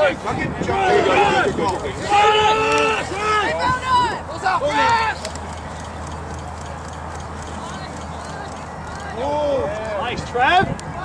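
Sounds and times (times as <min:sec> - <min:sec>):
voices shouting: 0:00.0 - 0:05.7.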